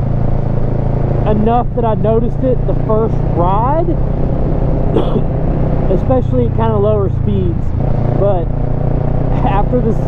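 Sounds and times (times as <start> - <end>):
motorcycle engine cruising: 0.0 - 10.0
road and wind noise: 0.0 - 10.0.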